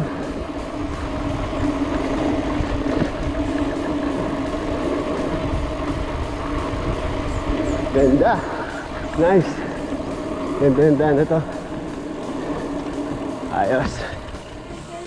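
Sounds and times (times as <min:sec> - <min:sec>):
bicycle tyre rumble on concrete: 0:00.0 - 0:15.0
steady buzzing tone: 0:00.0 - 0:15.0
wind: 0:00.0 - 0:15.0.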